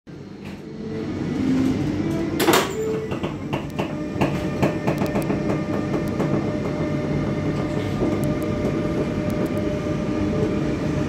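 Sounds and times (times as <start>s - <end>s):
electric locomotive rumble and hum: 0.1s - 11.0s.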